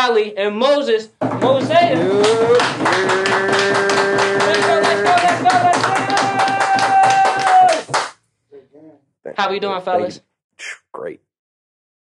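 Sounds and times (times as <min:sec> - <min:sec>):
fast rhythmic clapping: 0:01.4 - 0:08.2
person singing long notes: 0:01.9 - 0:05.5.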